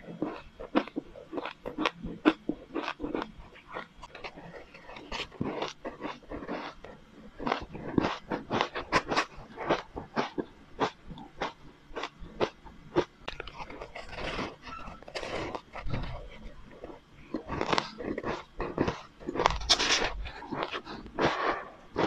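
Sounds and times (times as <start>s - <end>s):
chewing crushed ice: 0.0s - 22.0s.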